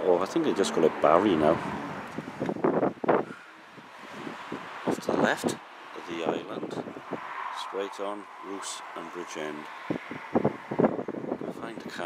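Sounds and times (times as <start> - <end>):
person speaking: 0.0 - 1.8
light wind: 0.0 - 12.0.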